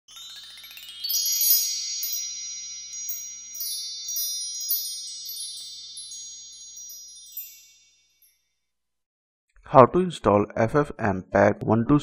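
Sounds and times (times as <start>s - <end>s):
shimmering chime sound effect: 0.1s - 8.6s.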